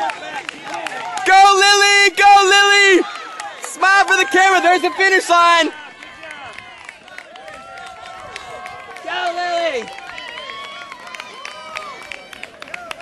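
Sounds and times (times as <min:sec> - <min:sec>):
scattered handclaps: 0:00.0 - 0:04.8, 0:05.6 - 0:13.0
crowd calling out and cheering: 0:00.0 - 0:13.0
loud shout: 0:00.0 - 0:13.0.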